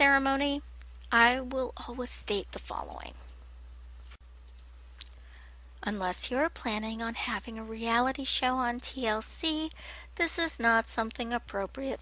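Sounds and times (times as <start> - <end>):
woman speaking: 0.0 - 3.3, 5.8 - 12.0
steady low hum: 0.0 - 12.0.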